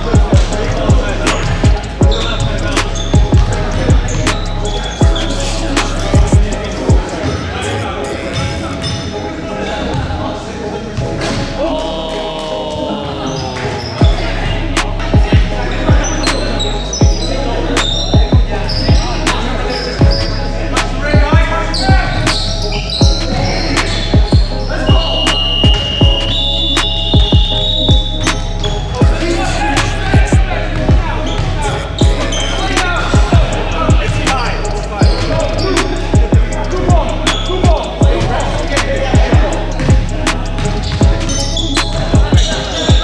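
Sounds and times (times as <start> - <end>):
sneaker squeaks: 0.0 - 10.1, 10.8 - 38.9, 39.6 - 43.0
players' voices: 0.0 - 43.0.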